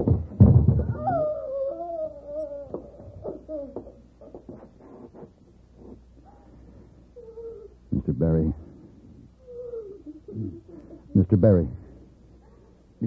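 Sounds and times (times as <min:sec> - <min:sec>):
woman sobbing and wailing: 0:09.4 - 0:11.1.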